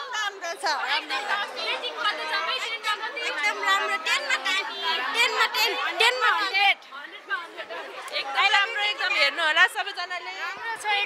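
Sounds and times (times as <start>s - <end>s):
women chattering excitedly: 0.0s - 11.0s.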